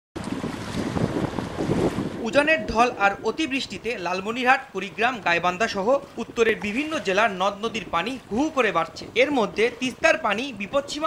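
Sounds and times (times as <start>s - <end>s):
fast-flowing river water: 0.2s - 11.0s
wind buffeting microphone: 0.2s - 11.0s.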